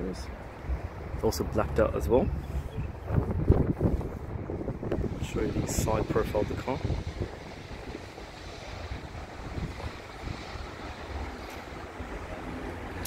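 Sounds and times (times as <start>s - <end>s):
road traffic noise: 0.0s - 13.0s
wind on microphone: 0.3s - 13.0s.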